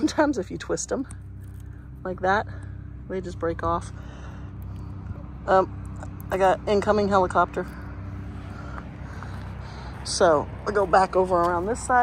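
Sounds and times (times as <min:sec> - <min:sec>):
distant helicopter drone: 0:00.0 - 0:12.0.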